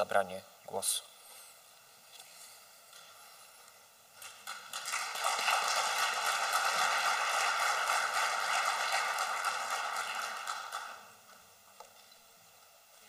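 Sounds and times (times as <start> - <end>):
audience applause: 4.2 - 11.2.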